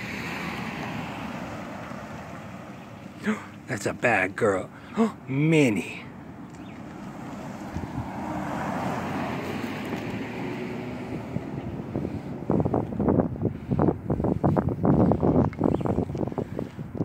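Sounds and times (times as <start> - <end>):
wind buffeting microphone: 6.4 - 17.0.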